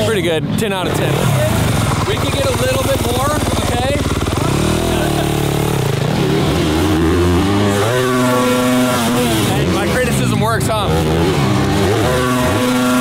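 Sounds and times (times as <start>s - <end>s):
motocross bike engine revving: 0.0s - 13.0s.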